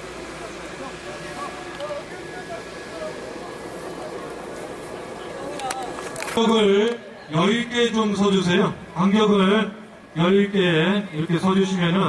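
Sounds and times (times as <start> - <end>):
crowd hubbub: 0.0 - 12.0.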